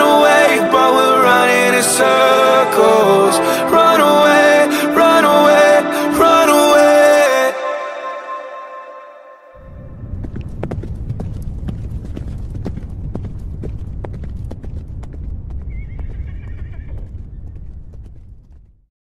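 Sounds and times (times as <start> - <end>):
steady low rumble: 9.6 - 18.9.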